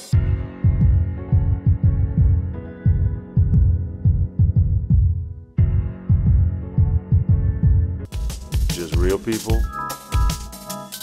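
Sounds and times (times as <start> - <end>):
sustained keyboard chords: 0.2 - 11.0.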